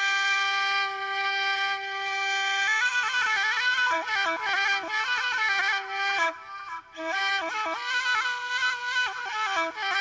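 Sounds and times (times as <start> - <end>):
wind instrument playing: 0.0 - 10.0.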